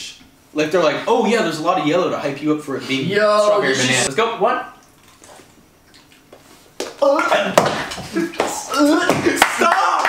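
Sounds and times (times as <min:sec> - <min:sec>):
people chewing: 0:04.8 - 0:08.9.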